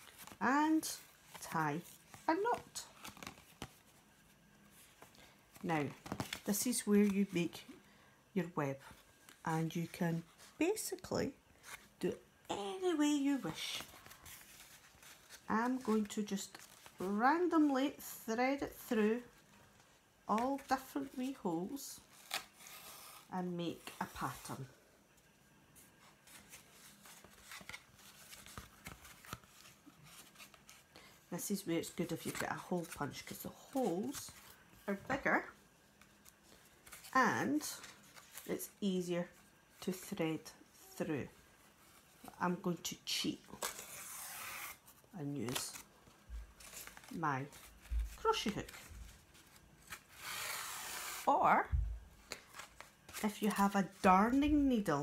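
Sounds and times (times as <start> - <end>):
yarn rubbing through paper: 46.7 - 51.4.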